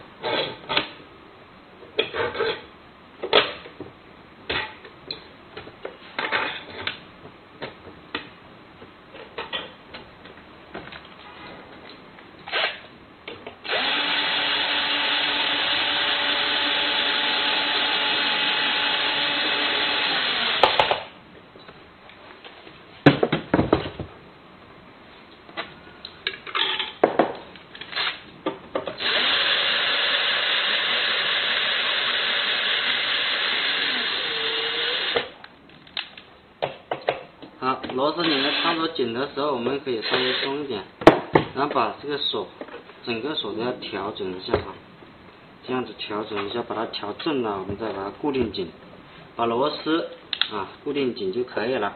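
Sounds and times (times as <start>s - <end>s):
electric drill driving screws: 12.5s - 12.8s, 13.6s - 21.1s, 29.0s - 35.3s, 38.2s - 38.8s, 40.0s - 40.6s.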